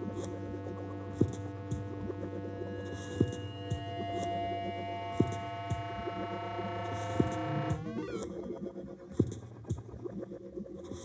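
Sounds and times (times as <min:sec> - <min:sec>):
low hum: 0:00.0 - 0:08.4
electronic drone: 0:00.0 - 0:08.6.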